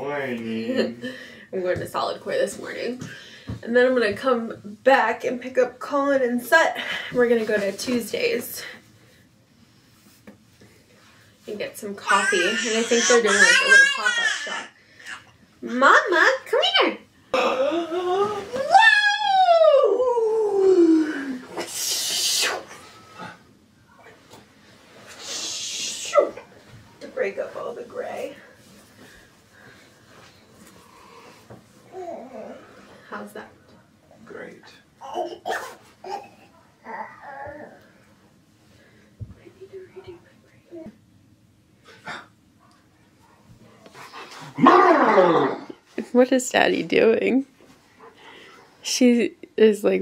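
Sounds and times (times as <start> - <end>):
short hissing rustle: 21.6 - 23.1, 24.9 - 26.2
dog howling: 44.6 - 45.8.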